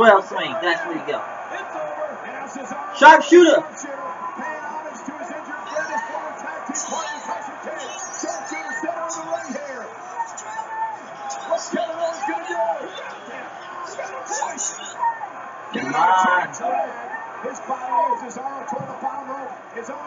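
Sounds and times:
commentators talking on tv: 0.0 - 20.0.

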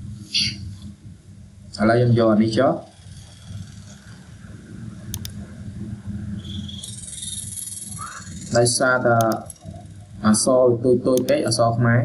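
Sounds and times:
low steady hum: 0.0 - 12.0
faint high chirring: 0.2 - 0.8, 2.8 - 11.5
computer mouse clicks: 5.0 - 5.4, 6.4 - 9.9, 11.1 - 11.4.

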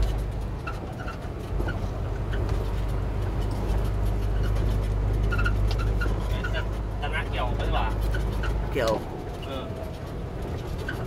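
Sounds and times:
truck engine droning: 0.0 - 11.0.

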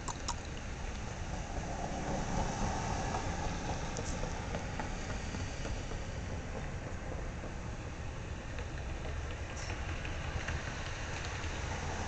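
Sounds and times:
low outdoor rumble with hiss: 0.0 - 12.0.

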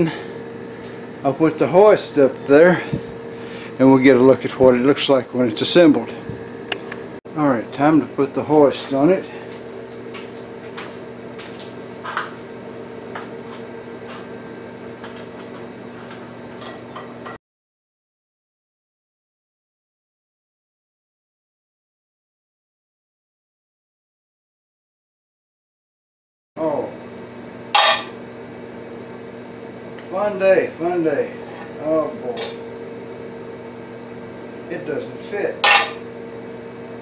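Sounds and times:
steady electrical hum: 0.0 - 17.4, 26.6 - 37.0.

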